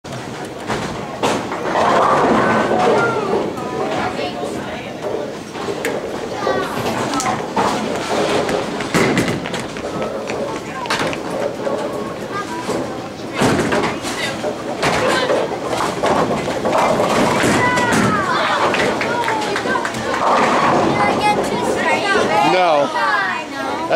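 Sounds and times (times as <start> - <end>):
bowling balls knocking pins: 0.1 - 22.6
children and adults chattering: 0.1 - 23.9.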